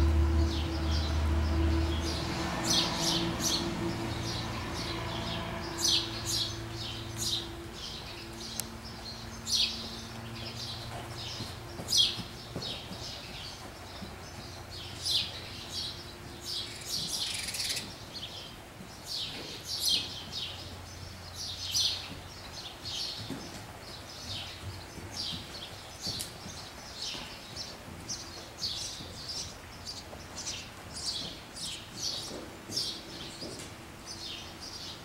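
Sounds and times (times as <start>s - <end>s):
small birds chirping: 1.9s - 35.0s.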